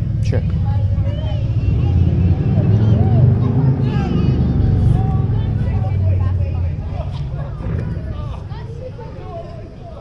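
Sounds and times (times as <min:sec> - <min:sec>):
loud low rumble: 0:00.0 - 0:08.9
indistinct voices: 0:00.0 - 0:10.0.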